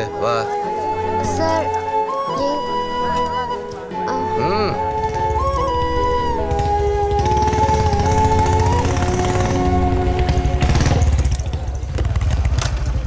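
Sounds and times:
background music of held notes: 0:00.0 - 0:11.8
motorcycle engine running: 0:04.9 - 0:13.0.

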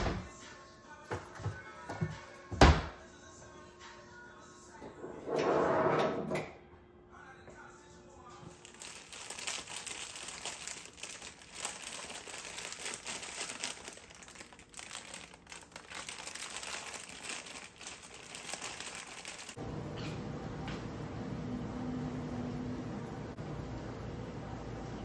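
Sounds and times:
plastic packaging crinkling: 0:08.5 - 0:19.6.

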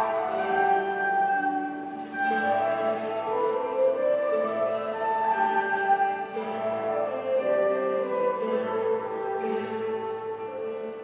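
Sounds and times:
flute slow melody: 0:00.0 - 0:11.0
harp: 0:00.0 - 0:11.0
plucked guitar: 0:00.0 - 0:11.0.

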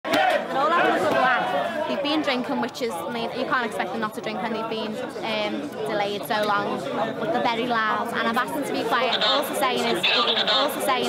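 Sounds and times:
people chattering: 0:00.1 - 0:11.0.

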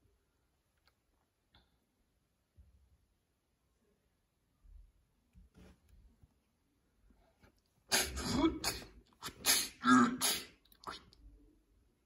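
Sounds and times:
breathy hissy voice bursts: 0:07.9 - 0:11.0.

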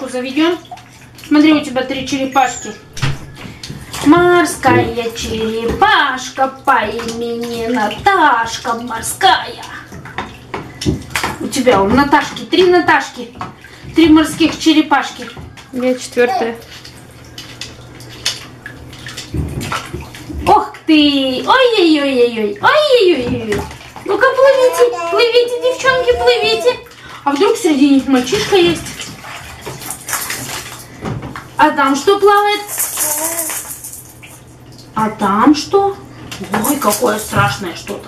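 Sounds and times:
bath water sloshing: 0:00.0 - 0:38.0
plastic bath toys clicking: 0:32.3 - 0:34.4.

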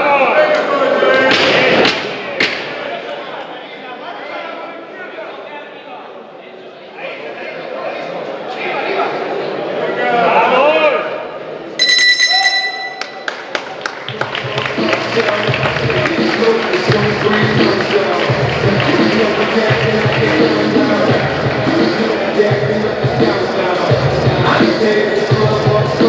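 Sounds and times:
voices shouting in a hall: 0:00.0 - 0:26.0
music with a steady beat: 0:14.2 - 0:26.0.

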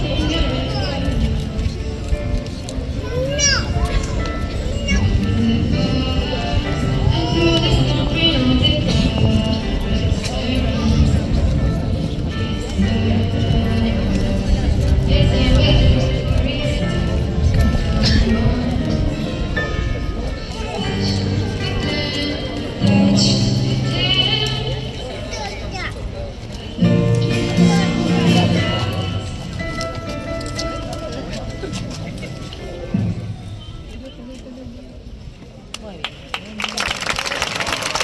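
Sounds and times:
woman singing into microphone: 0:05.3 - 0:11.5, 0:12.6 - 0:19.2, 0:20.7 - 0:25.1.

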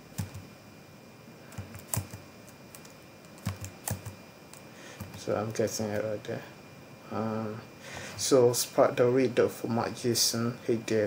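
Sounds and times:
computer keyboard keystrokes: 0:00.2 - 0:00.4, 0:01.5 - 0:05.2.

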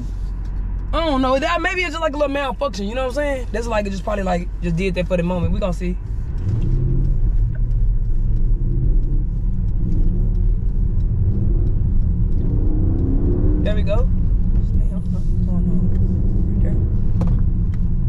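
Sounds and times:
road and engine rumble in car: 0:00.0 - 0:18.0.

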